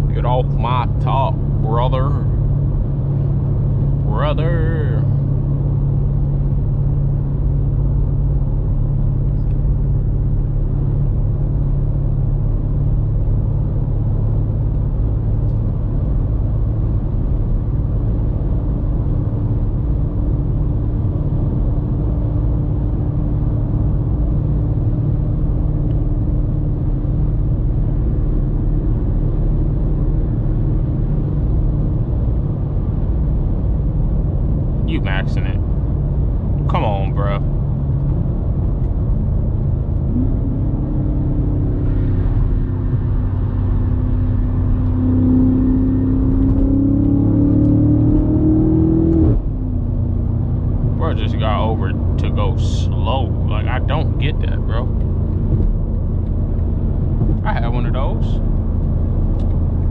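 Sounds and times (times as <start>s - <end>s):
car engine drone: 0.0s - 59.9s
tyre and road noise: 0.0s - 59.9s.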